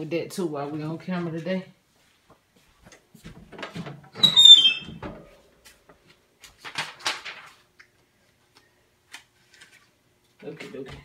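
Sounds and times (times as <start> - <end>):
squeak falling in pitch: 4.2 - 5.0.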